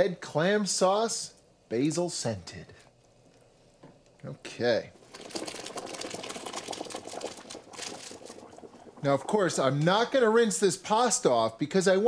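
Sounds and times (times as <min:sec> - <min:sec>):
water splashing: 0:05.0 - 0:09.8
pasta pattering against metal colander: 0:05.1 - 0:10.0.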